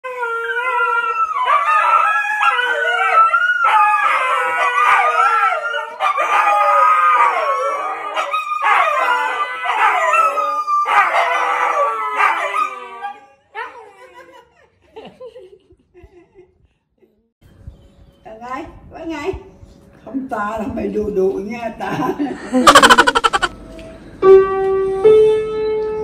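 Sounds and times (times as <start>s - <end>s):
dogs howling together: 0.0s - 13.9s.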